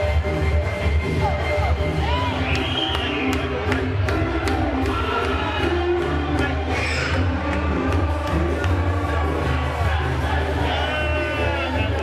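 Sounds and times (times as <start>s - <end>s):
club dance music with heavy bass: 0.0s - 12.0s.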